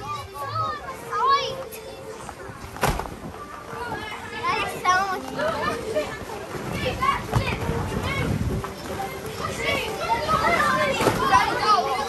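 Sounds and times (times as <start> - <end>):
children shouting and squealing: 0.0 - 2.6, 3.3 - 12.0
thump: 2.8 - 3.2.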